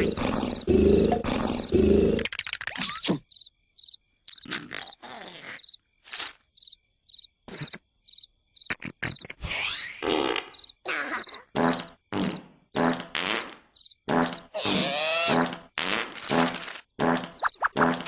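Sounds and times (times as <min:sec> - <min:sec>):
cricket chirping: 0:00.0 - 0:18.0
cartoon creature vocal noises: 0:04.4 - 0:05.7, 0:14.5 - 0:15.6.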